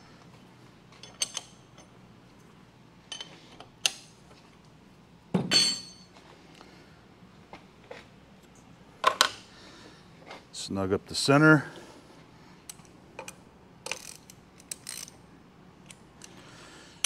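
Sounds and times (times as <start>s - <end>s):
low shop hum: 0.0s - 17.0s
ringing metal clink: 5.5s - 6.1s.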